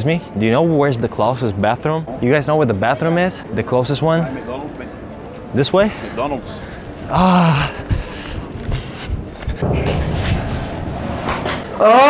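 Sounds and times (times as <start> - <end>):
outdoor street noise: 0.0 - 12.0
wind rumbling on microphone: 7.7 - 11.8.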